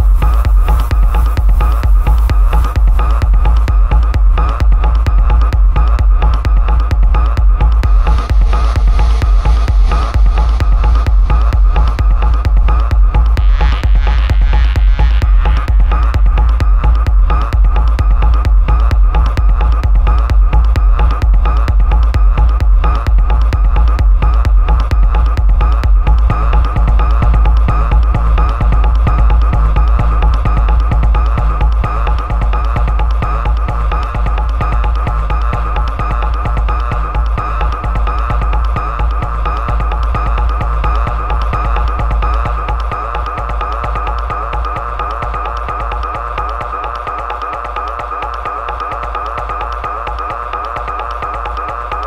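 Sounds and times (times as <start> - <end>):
dark techno music: 0.0 - 52.0.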